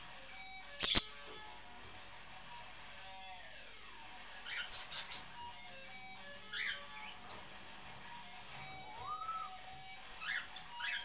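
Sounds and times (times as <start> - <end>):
parrot chirping: 0.7 - 1.2, 4.4 - 5.5, 6.3 - 7.2, 8.9 - 11.0.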